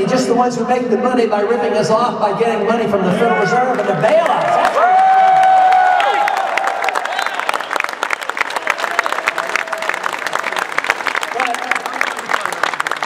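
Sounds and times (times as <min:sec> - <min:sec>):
audience applauding: 0:03.7 - 0:13.0
long held shout of approval: 0:04.6 - 0:07.6, 0:08.6 - 0:10.5.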